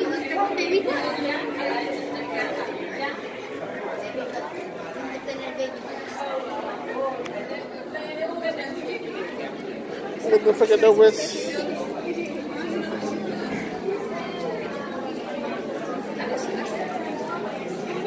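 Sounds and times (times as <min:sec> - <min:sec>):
chatter of many voices: 0:00.0 - 0:18.0.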